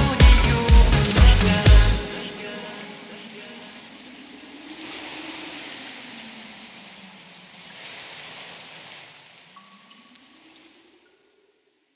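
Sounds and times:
rain falling: 3.7s - 8.8s.

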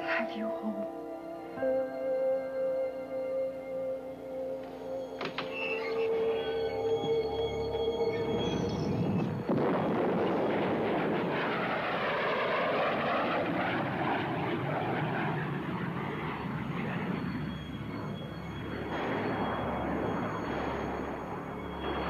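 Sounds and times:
rushing roar with phasing tone: 6.0s - 22.0s.

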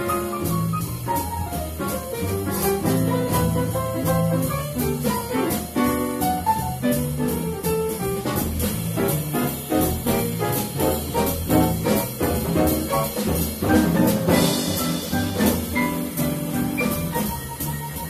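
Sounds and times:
piano playing swing lines: 0.0s - 18.0s
plucked double bass: 0.0s - 18.0s.

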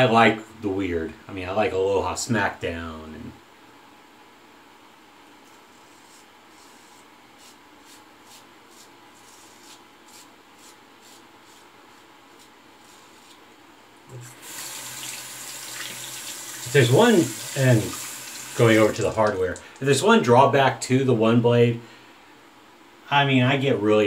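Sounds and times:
razor scraping stubble: 5.5s - 13.4s
tap water running into sink: 14.2s - 19.7s.

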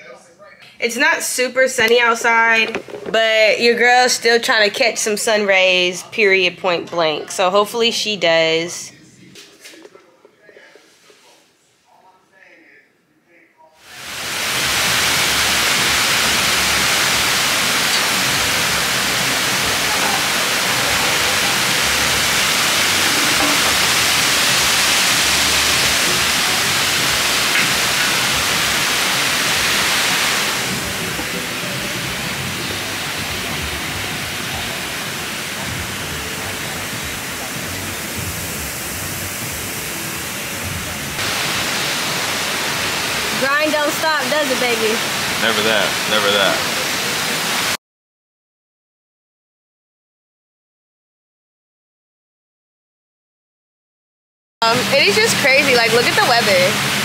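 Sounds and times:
waterfall rushing over stone: 13.8s - 47.8s, 54.6s - 57.0s.

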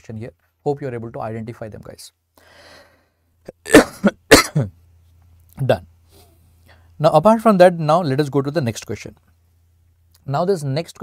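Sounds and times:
man coughing: 3.5s - 4.8s.

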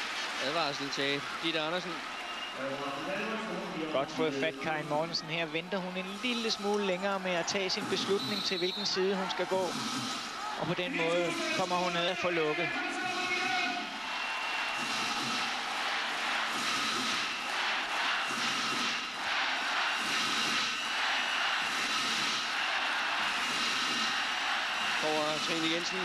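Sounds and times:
arena crowd cheering and shouting: 0.0s - 26.0s.

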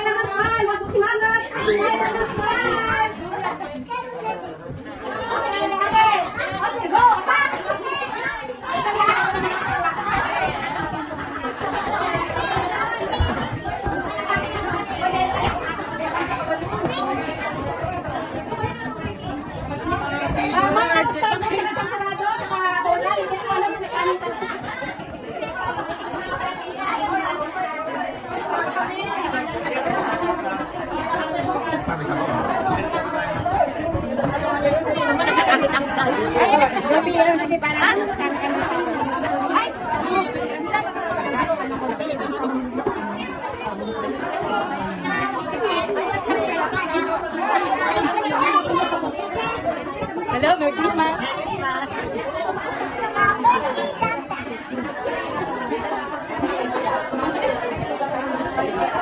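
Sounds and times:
babble of overlapping voices: 0.0s - 59.0s.

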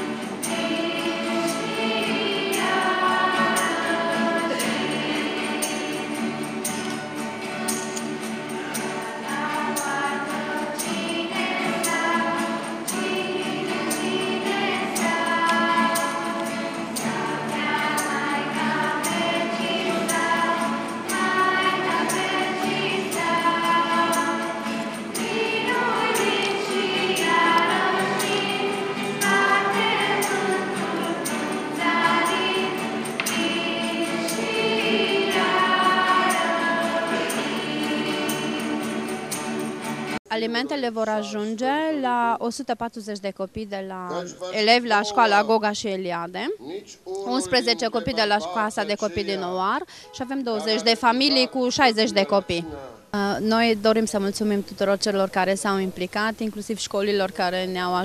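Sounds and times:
choir singing: 0.0s - 41.4s, 44.1s - 45.7s, 47.2s - 49.7s, 50.3s - 52.6s
strummed acoustic guitars: 0.0s - 41.9s, 43.9s - 46.0s, 47.2s - 52.5s.

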